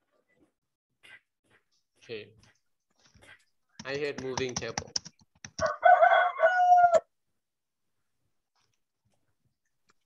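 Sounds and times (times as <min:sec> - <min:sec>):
rooster crowing: 0:05.6 - 0:07.1.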